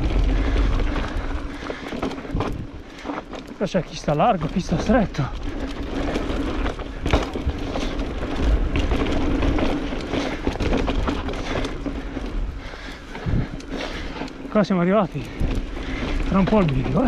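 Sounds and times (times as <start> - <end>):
bike chain and frame rattling: 0.0 - 17.0
bike tyres scrubbing over dirt: 0.0 - 17.0.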